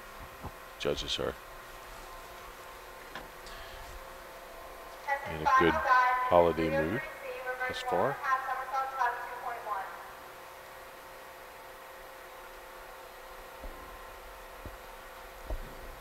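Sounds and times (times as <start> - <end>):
pool hall hum: 0.0 - 16.0
commentator speaking: 5.1 - 9.8.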